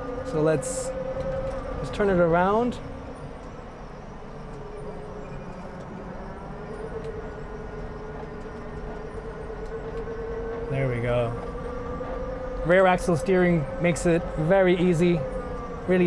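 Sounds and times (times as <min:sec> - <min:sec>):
low hum: 0:00.0 - 0:16.0.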